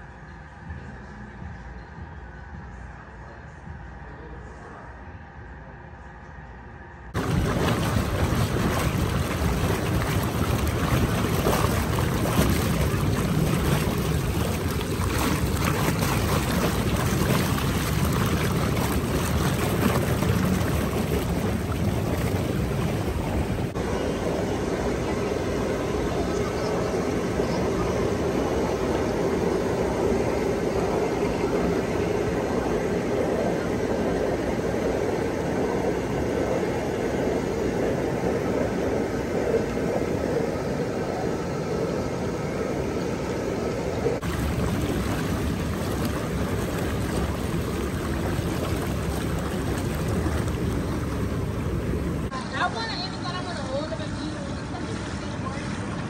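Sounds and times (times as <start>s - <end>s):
hot tub jets bubbling water: 7.2s - 56.0s.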